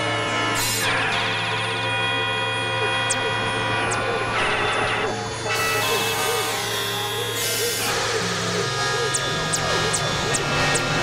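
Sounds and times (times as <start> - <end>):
electronic synthesizer drone music: 0.0 - 11.0.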